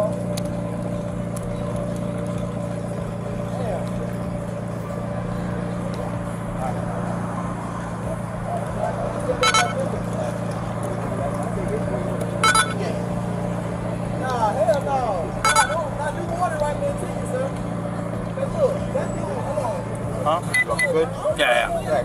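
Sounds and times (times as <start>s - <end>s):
indistinct voices: 0.0s - 22.0s
vehicle humming: 0.0s - 22.0s
short high electronic beep: 20.5s - 21.0s.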